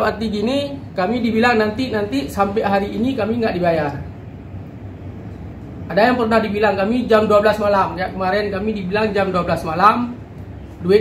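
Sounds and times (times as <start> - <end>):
room hiss and rumble: 0.0 - 11.0.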